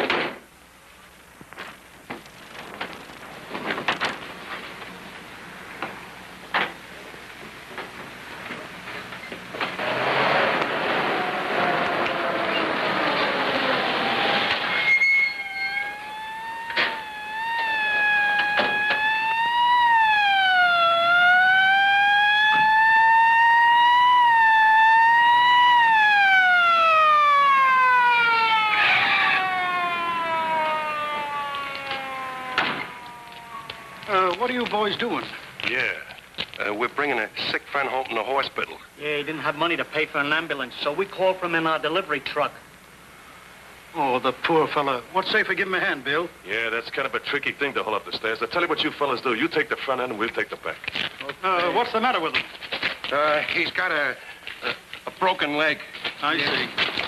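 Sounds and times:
noisy rushing: 0:09.6 - 0:15.0
siren wailing: 0:10.8 - 0:35.3.

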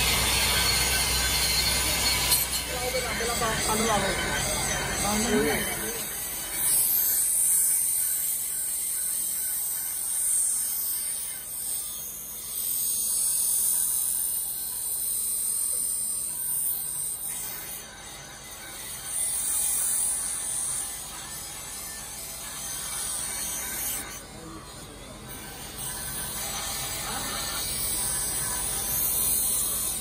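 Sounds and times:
knife grinding on grinding wheel: 0:00.0 - 0:30.0.

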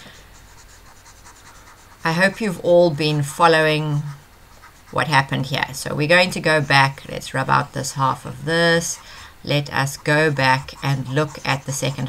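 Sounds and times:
stylus scratching on screen: 0:00.0 - 0:12.0.

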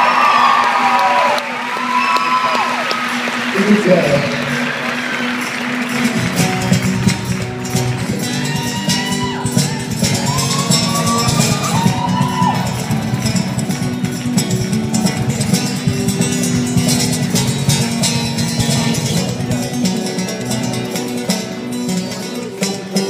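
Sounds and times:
acoustic guitar strumming: 0:01.6 - 0:23.0.

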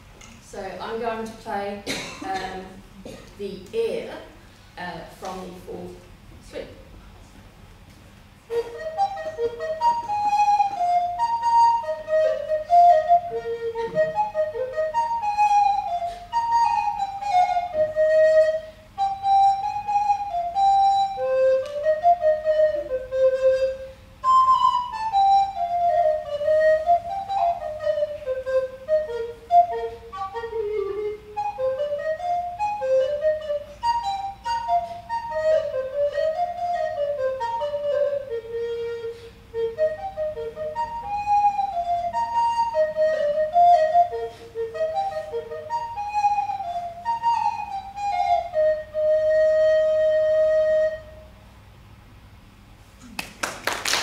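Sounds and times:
alto recorder solo: 0:08.5 - 0:51.4.

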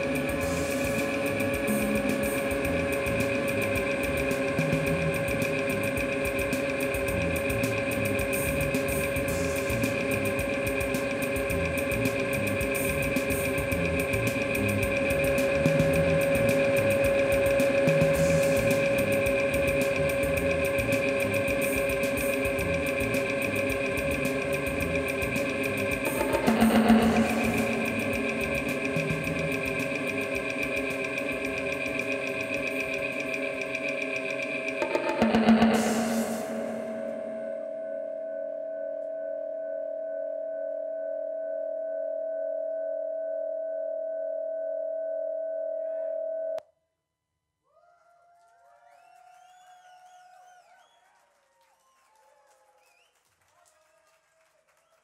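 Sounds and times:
fast pulsing texture: 0:00.0 - 0:38.1
sustained drone tones: 0:00.0 - 0:40.3.

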